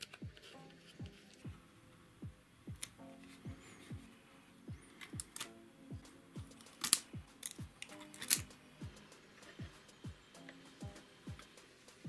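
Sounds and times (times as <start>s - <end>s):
electronic music with steady beat: 0.0s - 12.0s
film peeling off tape clicks: 4.9s - 5.6s, 6.5s - 9.6s.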